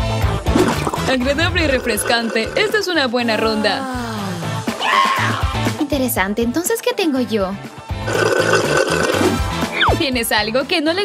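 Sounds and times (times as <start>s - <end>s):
slurping through a straw: 0.5s - 3.2s, 8.0s - 9.6s.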